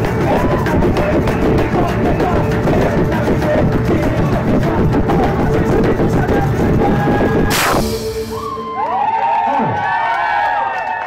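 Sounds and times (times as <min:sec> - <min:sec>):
live band with violin and drums: 0:00.0 - 0:08.9
audience cheering and whooping: 0:06.8 - 0:11.0
loud cymbal crash: 0:07.5 - 0:08.8.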